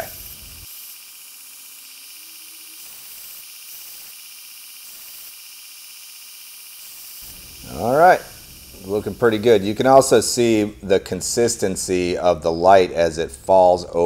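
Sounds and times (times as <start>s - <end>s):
drill bit grinding on belt grinder: 0.0s - 12.6s.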